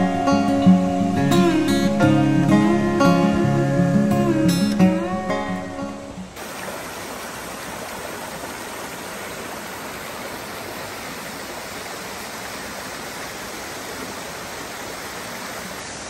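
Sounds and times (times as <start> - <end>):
stream rushing over rocks: 0.0 - 16.0.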